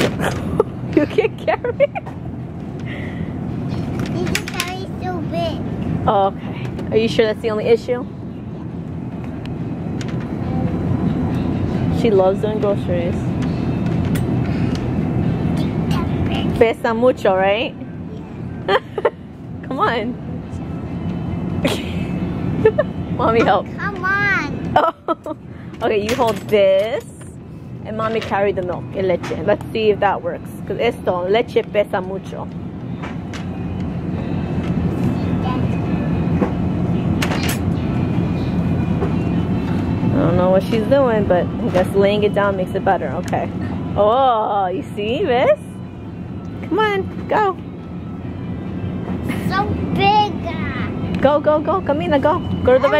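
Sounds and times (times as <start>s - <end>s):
supermarket background rumble: 0.0s - 52.9s.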